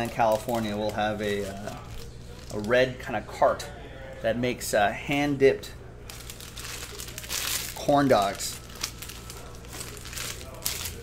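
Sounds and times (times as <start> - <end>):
foil wrapper crinkling: 0.0 - 3.0, 6.1 - 11.0.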